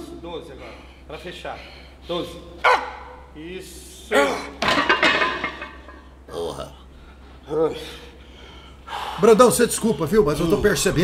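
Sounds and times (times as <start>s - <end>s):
man groaning: 4.1s - 4.6s.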